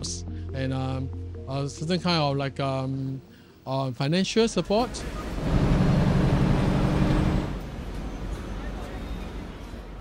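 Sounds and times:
bus engine humming: 4.8 - 10.0
road noise: 4.8 - 10.0.

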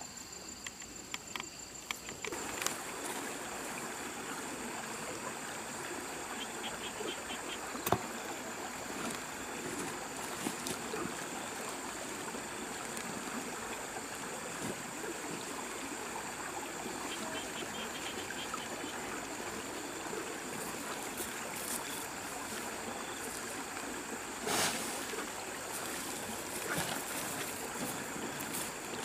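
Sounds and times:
outdoor background hiss: 0.0 - 29.0.

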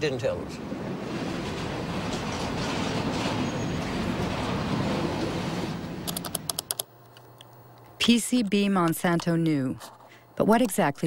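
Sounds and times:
freight train rumbling past: 0.0 - 6.4
computer keyboard typing: 6.0 - 6.9.

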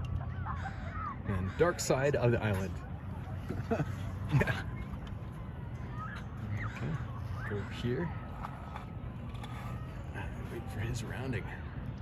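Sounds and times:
faint voices: 0.0 - 12.0
low outdoor rumble: 0.0 - 12.0.

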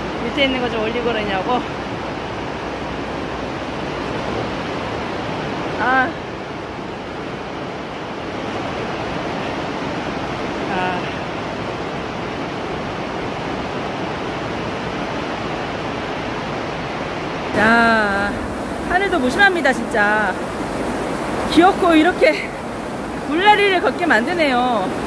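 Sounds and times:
heavy rain on greenhouse roof: 0.0 - 25.0.

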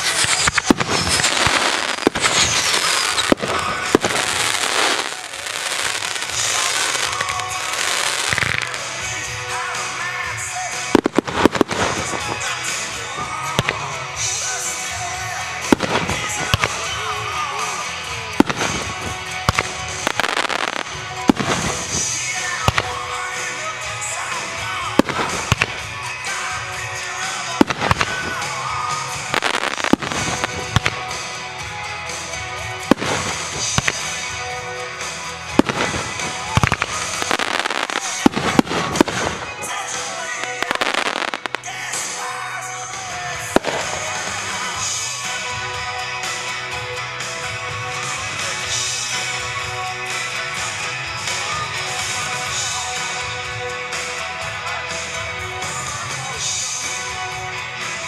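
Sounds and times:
fireworks bursting with bangs: 0.0 - 42.3, 43.2 - 45.4
music: 0.0 - 58.0.

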